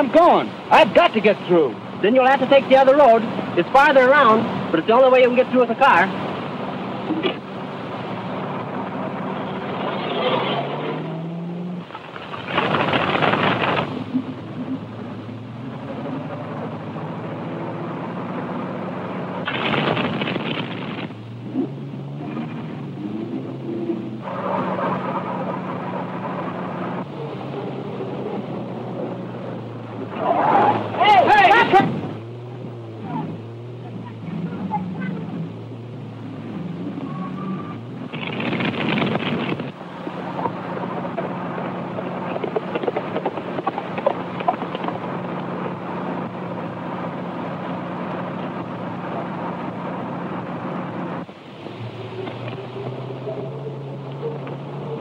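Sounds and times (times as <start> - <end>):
car engine running: 0.0 - 55.0.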